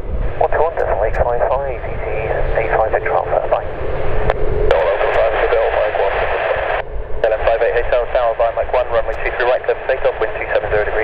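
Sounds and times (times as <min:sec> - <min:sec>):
low rumble: 0:00.0 - 0:11.0
radio chatter voices: 0:00.3 - 0:11.0.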